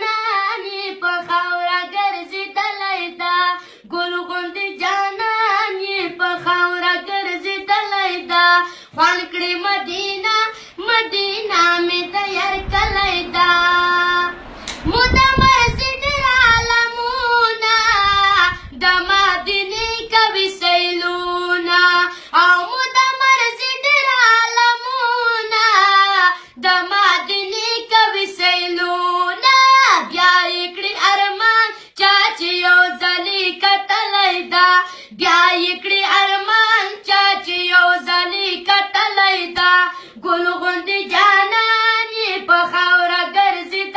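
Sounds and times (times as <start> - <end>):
boy singing: 0.0 - 43.9
low rumble: 10.0 - 20.2.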